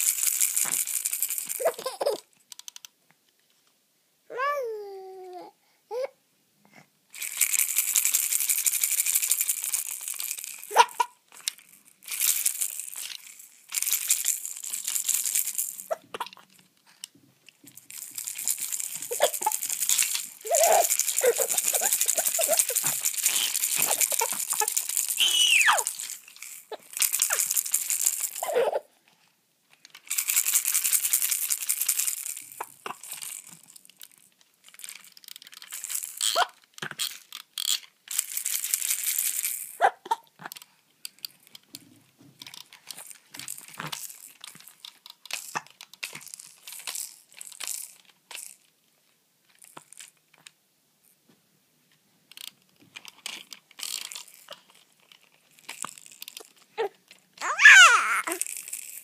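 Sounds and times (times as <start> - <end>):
plastic toy rattle shaken: 0.0 - 2.9, 7.1 - 28.9, 29.7 - 41.8, 42.4 - 48.7, 49.4 - 50.5, 52.3 - 59.0
baby squealing: 4.3 - 6.1, 10.7 - 11.2, 19.1 - 19.6, 20.4 - 26.0, 28.4 - 28.9, 56.8 - 58.4
baby cooing: 4.3 - 6.2, 19.1 - 19.6, 20.4 - 26.0, 28.4 - 28.9, 56.8 - 58.4.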